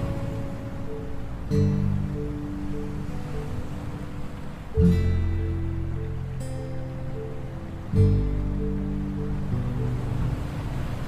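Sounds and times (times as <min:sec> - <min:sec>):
acoustic guitar notes: 0:00.0 - 0:11.0
ocean waves breaking on beach: 0:00.0 - 0:11.0.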